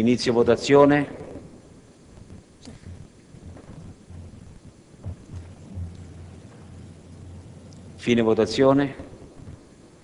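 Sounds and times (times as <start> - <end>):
microphone system hum: 0.0 - 10.0.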